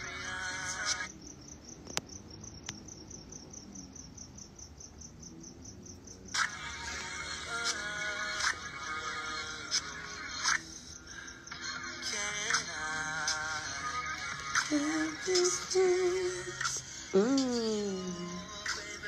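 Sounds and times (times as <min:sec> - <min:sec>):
music: 0:00.0 - 0:01.2, 0:06.3 - 0:19.0
cricket chirping: 0:00.0 - 0:16.9.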